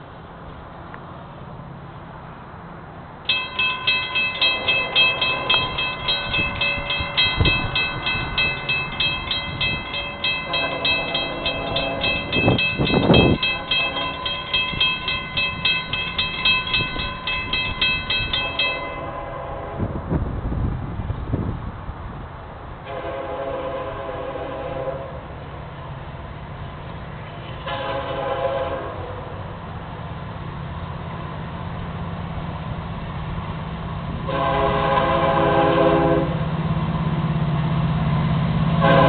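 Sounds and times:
crossing warning bell ringing: 3.3s - 19.6s.

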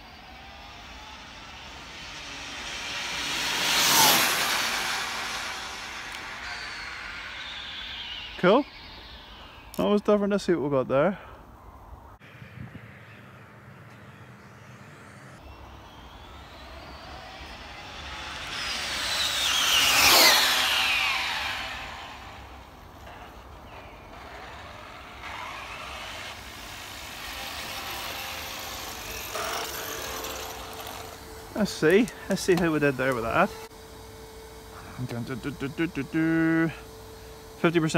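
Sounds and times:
electric motor whine passing by: 0.0s - 37.9s.

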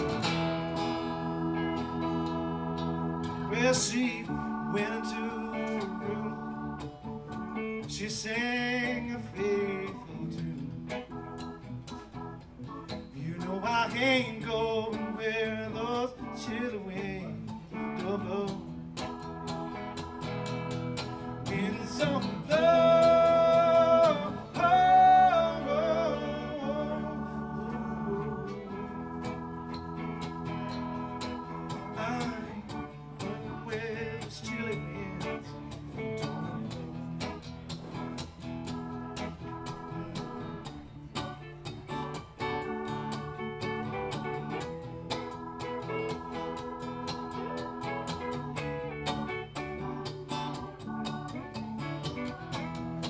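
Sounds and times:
electric guitar: 0.0s - 53.0s
keyboard: 0.0s - 53.0s
strummed acoustic guitar: 0.0s - 53.0s
people singing: 21.6s - 28.8s.

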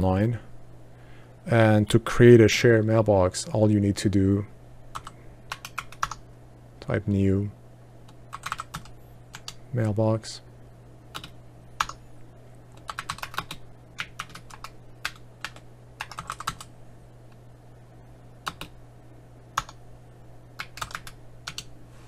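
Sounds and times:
faint low hum: 0.0s - 22.0s
typing on computer keyboard: 4.9s - 6.2s, 8.3s - 9.6s, 11.1s - 12.0s, 12.8s - 16.7s, 18.4s - 18.7s, 20.6s - 21.7s.

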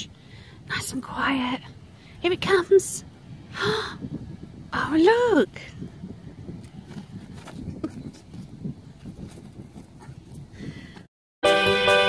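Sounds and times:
wind rumbling on microphone: 0.0s - 11.1s
soft rustles: 6.6s - 10.5s.

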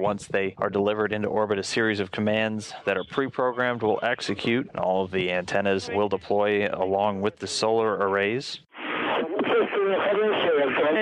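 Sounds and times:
voice over radio link: 0.0s - 1.4s, 2.2s - 11.0s.

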